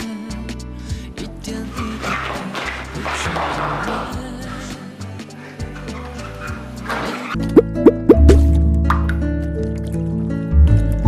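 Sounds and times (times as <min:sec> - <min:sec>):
held music chord with bass: 0:07.4 - 0:08.8
cartoon plops rising in pitch: 0:07.6 - 0:08.5.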